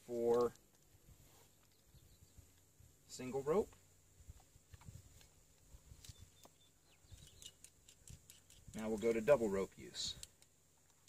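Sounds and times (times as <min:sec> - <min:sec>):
faint clicks of rappel device: 0:00.2 - 0:02.7, 0:03.7 - 0:09.0, 0:10.1 - 0:11.0.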